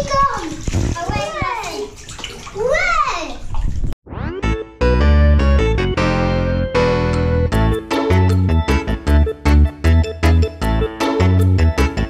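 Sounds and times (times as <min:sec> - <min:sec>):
bath water sloshing: 0:00.0 - 0:04.0.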